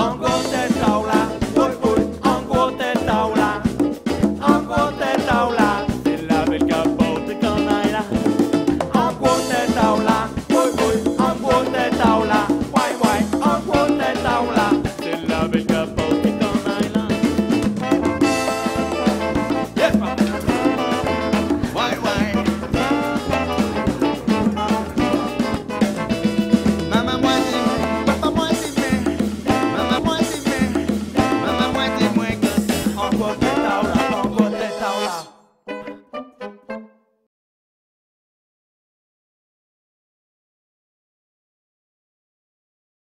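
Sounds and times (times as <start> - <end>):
horn melody: 0.0 - 6.2, 7.0 - 37.2
bass line: 0.0 - 35.2
drum kit and percussion: 0.0 - 35.2
salsa band music: 0.0 - 37.0
trombone playing: 0.0 - 37.1.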